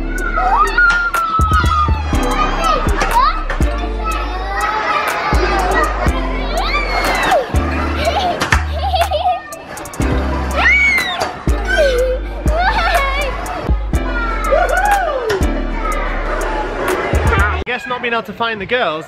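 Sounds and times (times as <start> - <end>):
background music with bass line: 0.0 - 17.6
children squealing and shouting: 0.0 - 17.8.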